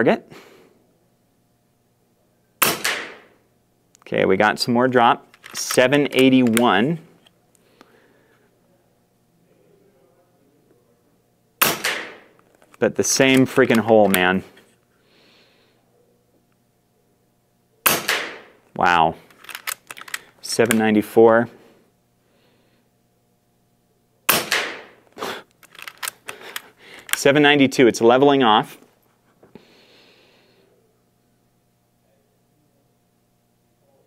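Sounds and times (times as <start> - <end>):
air rifle shot crack: 2.6 - 3.3, 11.6 - 12.3, 17.8 - 18.6, 24.3 - 25.0.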